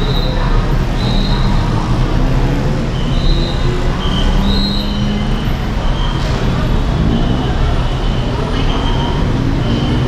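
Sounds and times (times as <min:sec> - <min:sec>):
bus car and motorcycle engines: 0:00.0 - 0:10.0.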